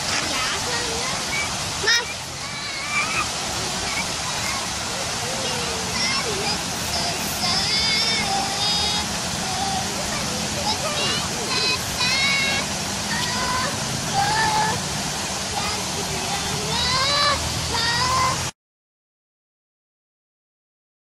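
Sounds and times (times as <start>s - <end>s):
high-pitched voices calling out: 0.0s - 8.0s
fountain water rushing: 0.0s - 18.5s.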